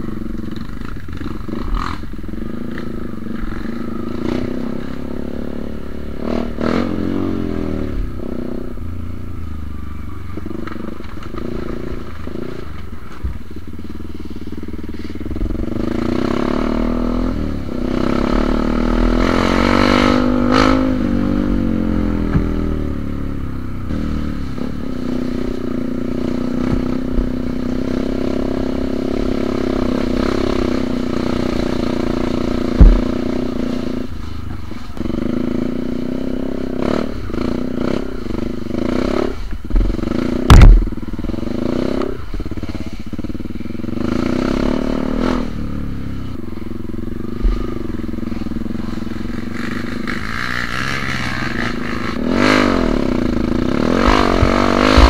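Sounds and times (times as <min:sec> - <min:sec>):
motorcycle engine revving: 0:00.0 - 0:55.0
heavy thumps: 0:32.7 - 0:33.3, 0:40.5 - 0:40.9, 0:53.9 - 0:55.0.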